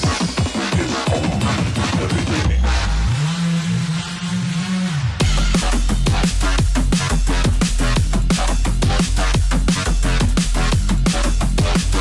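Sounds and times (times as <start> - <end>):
deep synth bass note: 2.3 - 12.0.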